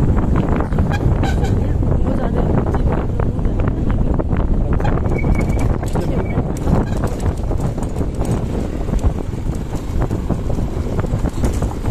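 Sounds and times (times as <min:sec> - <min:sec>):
vehicle rumbling on dirt track: 0:00.0 - 0:11.9
wind on microphone: 0:00.0 - 0:11.9
clicks and rattles: 0:05.2 - 0:10.2, 0:11.1 - 0:11.9.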